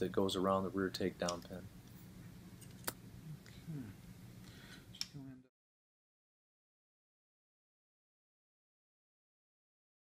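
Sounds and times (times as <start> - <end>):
faint low sound: 3.1 - 4.2.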